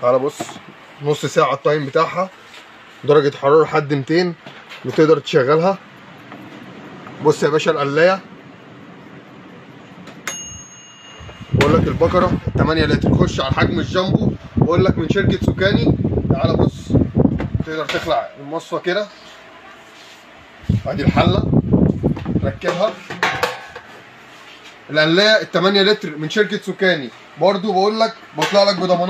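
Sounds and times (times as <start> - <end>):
timer bell ringing: 10.2 - 12.5
air fryer basket knocks: 22.1 - 23.9.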